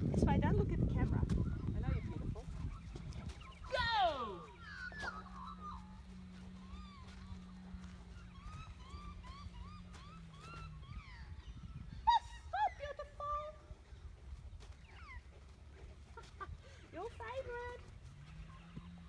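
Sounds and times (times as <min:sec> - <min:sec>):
birds honking: 0:04.4 - 0:12.0.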